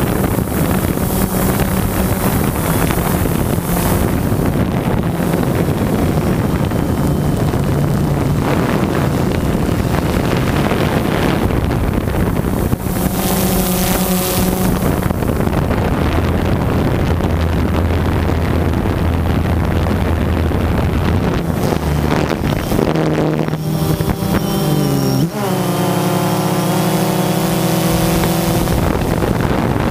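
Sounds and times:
drone propellers buzzing: 0:00.0 - 0:29.9
wind noise on microphone: 0:00.0 - 0:29.9.

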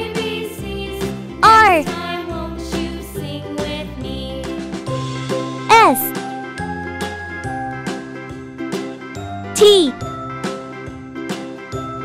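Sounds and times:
cheerful children's music: 0:00.0 - 0:05.0, 0:05.7 - 0:06.1.

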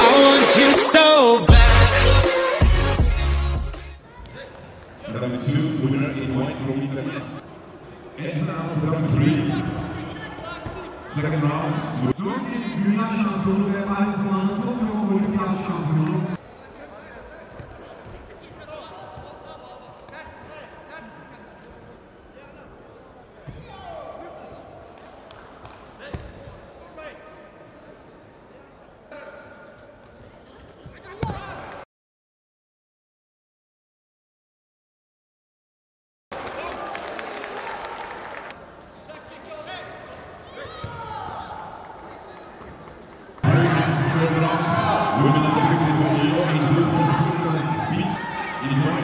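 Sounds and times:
voices calling out in a hall: 0:04.0 - 0:25.4, 0:36.4 - 0:49.0
audience applauding: 0:36.3 - 0:38.6.

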